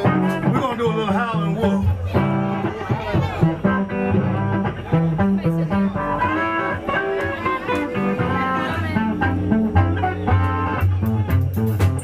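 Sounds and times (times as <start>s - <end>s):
electric guitar: 0.0s - 12.0s
steady bass line: 0.0s - 12.0s.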